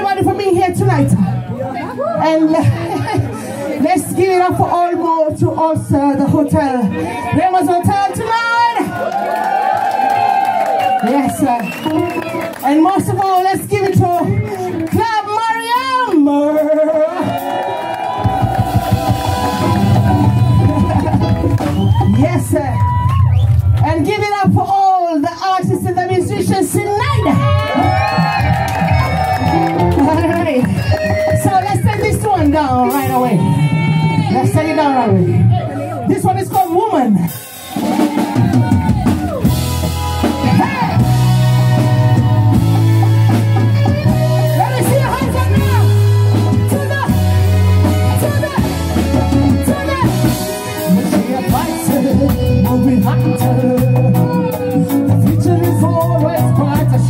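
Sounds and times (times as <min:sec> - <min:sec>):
bass and drums: 0:00.0 - 0:57.0
live reggae band: 0:00.0 - 0:57.0
person singing with vibrato: 0:50.1 - 0:57.0.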